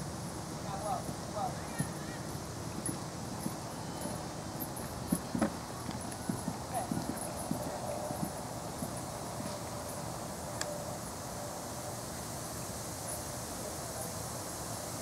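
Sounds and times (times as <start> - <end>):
horse hoofbeats on sand: 0.7 - 10.0.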